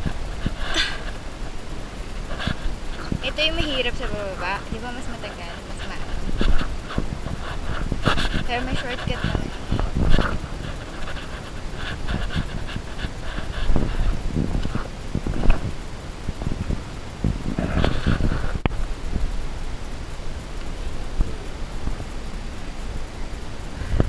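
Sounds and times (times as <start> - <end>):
heavy panting breaths: 0.0 - 15.7, 17.3 - 18.6
camera handling rubbing and knocking: 5.9 - 15.6.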